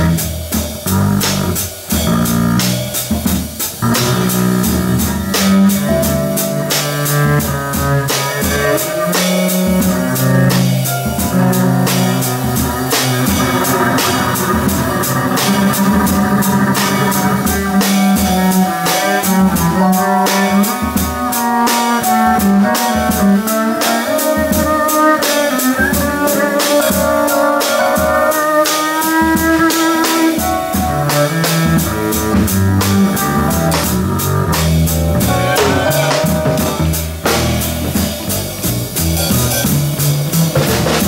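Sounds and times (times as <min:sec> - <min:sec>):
plucked double bass: 0:00.0 - 0:28.4, 0:29.0 - 0:41.0
drum kit with cymbal strikes: 0:00.0 - 0:41.0
jazz melody line: 0:00.0 - 0:41.0.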